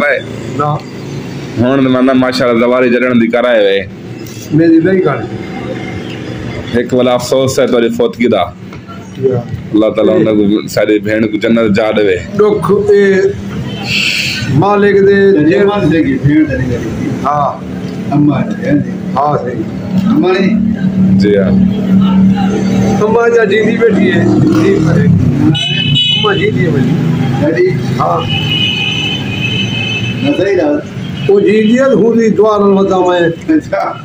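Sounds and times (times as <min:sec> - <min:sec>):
man speaking: 0:00.0 - 0:00.8, 0:01.6 - 0:05.4, 0:06.6 - 0:28.4, 0:30.2 - 0:34.0
man talking: 0:00.0 - 0:00.8, 0:01.6 - 0:05.4, 0:06.7 - 0:08.6, 0:09.2 - 0:28.4, 0:30.2 - 0:34.0.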